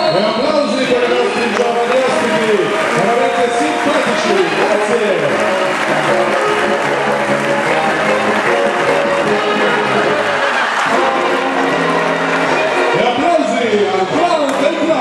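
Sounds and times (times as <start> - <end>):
music: 0.0 - 15.0
audience applauding: 0.6 - 15.0.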